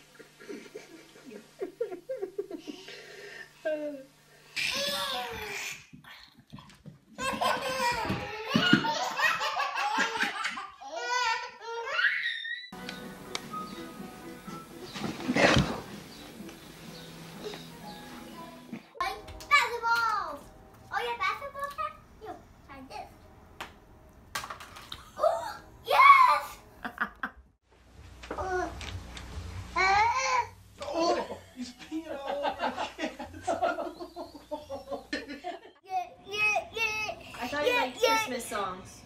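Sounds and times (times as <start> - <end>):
people laughing heartily: 0.1 - 2.8, 31.1 - 35.7
baby laughing: 7.2 - 12.0.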